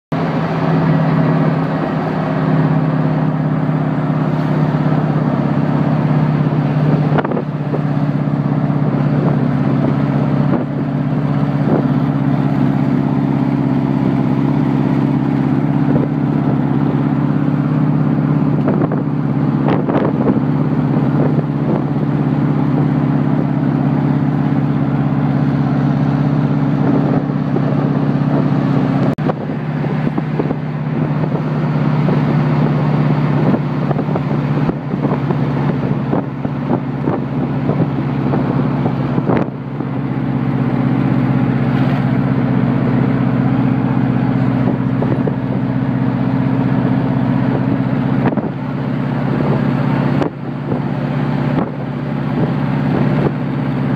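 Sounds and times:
buggy engine running: 0:00.1 - 0:53.9
road and wind noise: 0:00.1 - 0:53.9.

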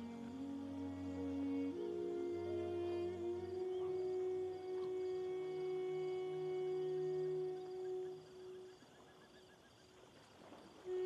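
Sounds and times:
sustained orchestral note: 0:00.0 - 0:08.2.

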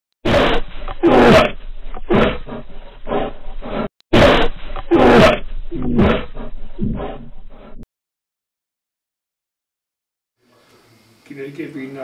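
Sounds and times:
animal roaring: 0:00.3 - 0:07.8.

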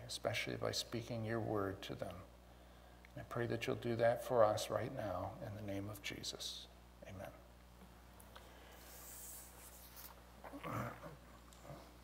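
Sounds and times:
man clearing throat: 0:10.5 - 0:11.9.

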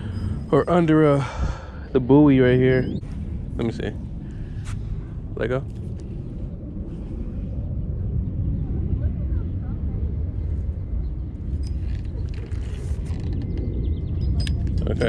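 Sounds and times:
low outdoor rumble: 0:00.0 - 0:15.0.

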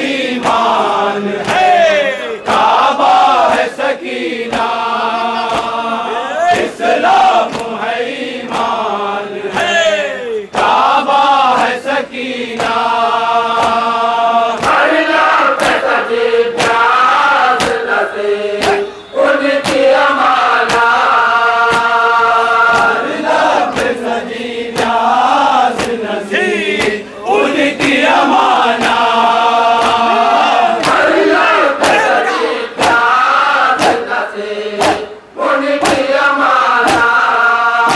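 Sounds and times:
men chanting a lament: 0:00.0 - 0:37.9
hand slaps on chest: 0:05.4 - 0:05.8, 0:07.4 - 0:07.8, 0:15.6 - 0:15.8, 0:17.6 - 0:17.8, 0:18.6 - 0:18.9, 0:19.6 - 0:19.9, 0:20.6 - 0:20.9, 0:21.7 - 0:22.0, 0:25.7 - 0:26.0, 0:29.8 - 0:30.0, 0:30.8 - 0:31.0, 0:33.8 - 0:34.0, 0:34.8 - 0:35.1, 0:35.8 - 0:36.1, 0:36.8 - 0:37.1.

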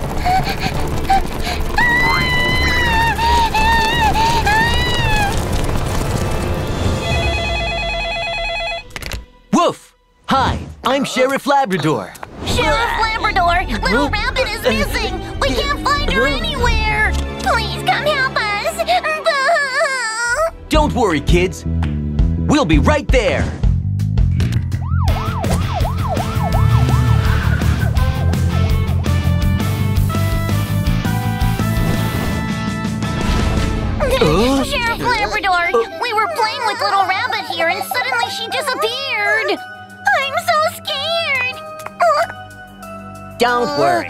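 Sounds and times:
music: 0:00.0 - 0:10.9, 0:12.2 - 0:44.0
telephone ringing: 0:06.9 - 0:09.0
police siren yelping: 0:24.8 - 0:28.6.

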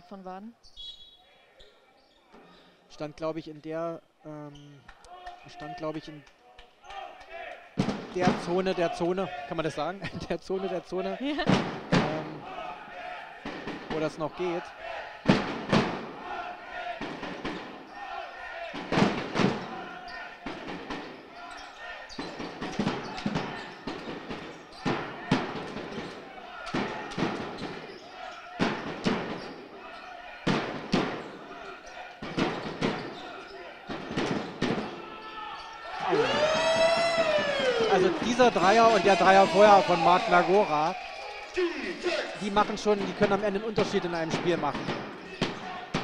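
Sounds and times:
siren-like wail: 0:36.1 - 0:38.2.

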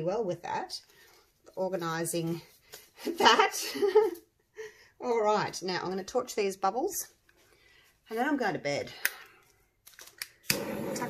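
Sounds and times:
gas torch igniter clicking: 0:10.2 - 0:11.0
gas torch hissing: 0:10.5 - 0:11.0.

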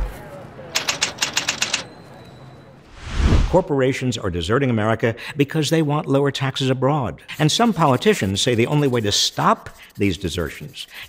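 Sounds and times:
typewriter key strikes: 0:00.8 - 0:02.0.

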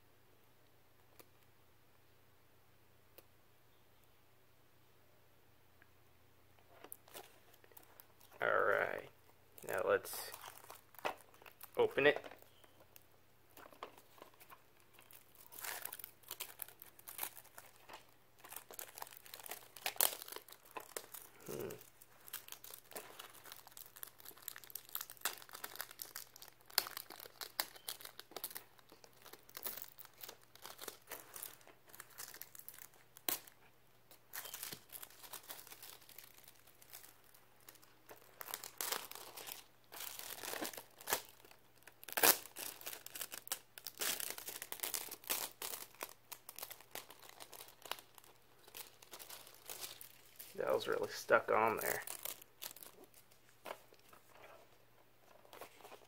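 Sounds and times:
plastic shrink-wrap crinkling: 0:06.8 - 0:56.0.

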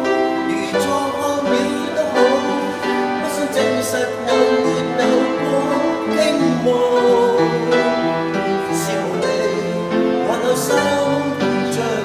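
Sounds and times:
man singing slow ballad: 0:00.0 - 0:12.0
upright piano accompaniment: 0:00.0 - 0:12.0.

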